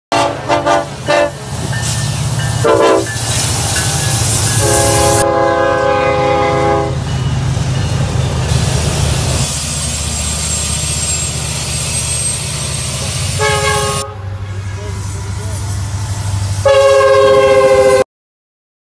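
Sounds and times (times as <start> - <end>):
locomotive horn blasts: 0.1 - 1.6, 2.6 - 3.2, 4.5 - 7.1, 13.3 - 14.8, 16.6 - 18.0
diesel engines rumbling: 0.1 - 17.5
train rolling past: 0.1 - 18.0.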